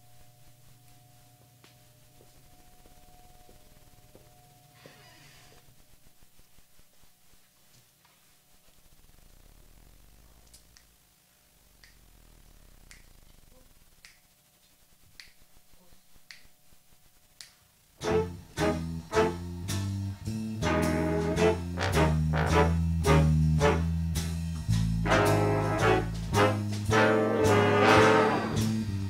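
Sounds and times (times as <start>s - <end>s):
finger snaps: 10.4s - 11.0s, 11.8s - 12.1s, 12.8s - 15.5s, 16.2s - 16.6s, 17.3s - 17.7s
jazz big band playing swing: 18.0s - 29.0s.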